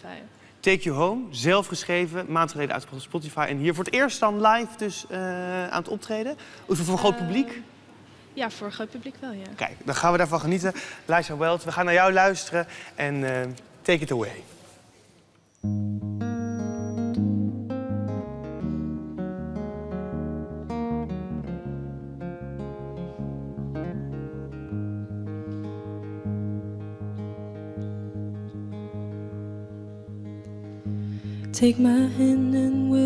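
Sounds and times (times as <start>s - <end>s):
acoustic guitar strumming: 15.6s - 33.0s.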